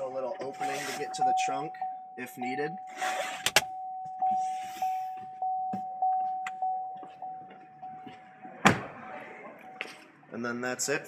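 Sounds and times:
car warning chime dinging: 1.0 - 8.2.

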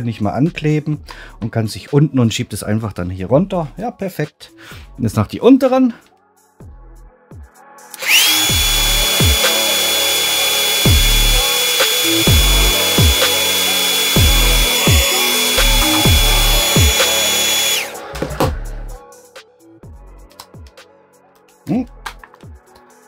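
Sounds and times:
hair dryer running: 8.0 - 18.0
music with deep beat: 8.5 - 23.0.

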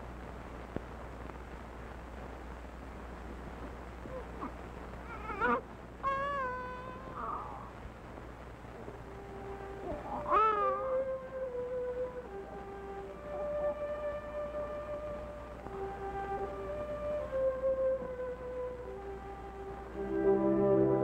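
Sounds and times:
wailing cry: 4.1 - 7.8, 9.4 - 15.3
soft orchestral film score: 8.8 - 21.0.

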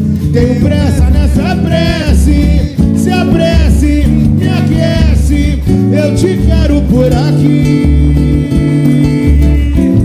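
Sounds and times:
plucked guitar chords: 0.0 - 10.0
samba band playing: 0.0 - 10.0.

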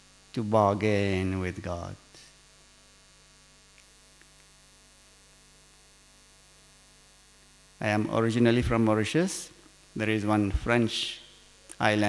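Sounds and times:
faint electrical mains hum: 0.0 - 12.0.

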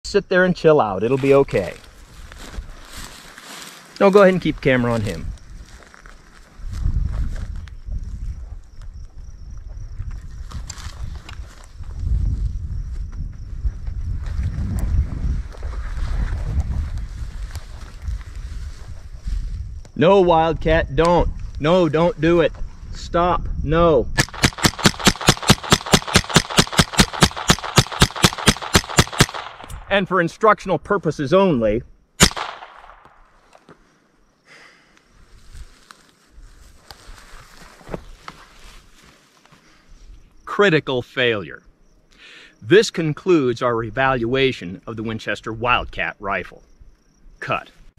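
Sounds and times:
wind buffeting microphone: 6.5 - 25.0
rifle shot: 24.2 - 29.9, 32.2 - 33.2.

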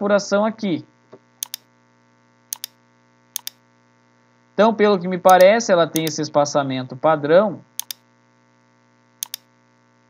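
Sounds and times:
mouse button clicking: 1.4 - 1.7, 2.6 - 2.8, 3.4 - 3.6, 5.3 - 6.2, 7.8 - 8.0, 9.2 - 9.5.

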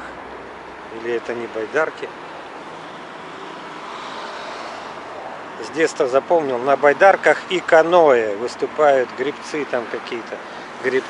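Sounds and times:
road traffic noise: 0.0 - 11.0
vehicle passing: 1.4 - 7.9.

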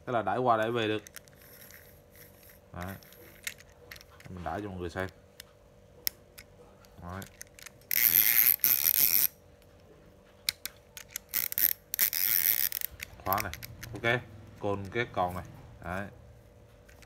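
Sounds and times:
fishing reel ratcheting clicks: 0.6 - 4.2, 6.4 - 9.4, 10.5 - 15.1.

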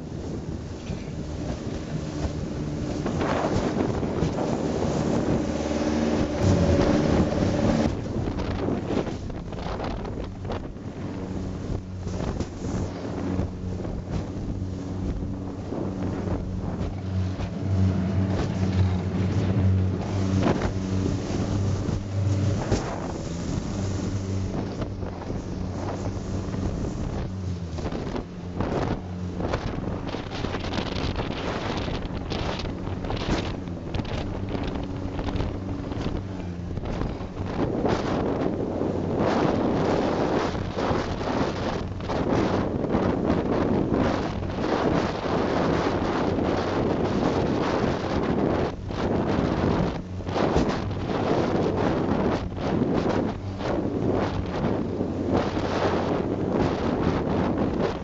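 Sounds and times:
boat engine running: 0.0 - 58.0
boat slapping through waves: 0.0 - 58.0
water rushing along hull: 0.0 - 58.0
wind on microphone: 0.0 - 58.0.

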